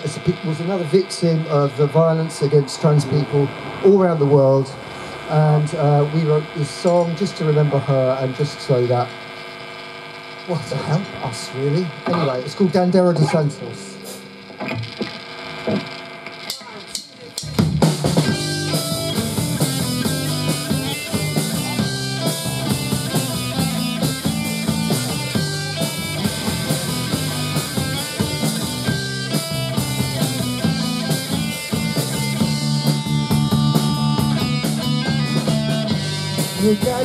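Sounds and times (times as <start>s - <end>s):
punk rock band playing: 11.9s - 37.0s.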